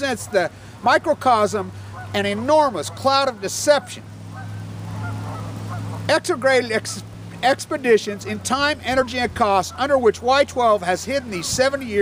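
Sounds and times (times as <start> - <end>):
waterfowl calling faintly: 1.7 - 6.2, 9.0 - 10.1.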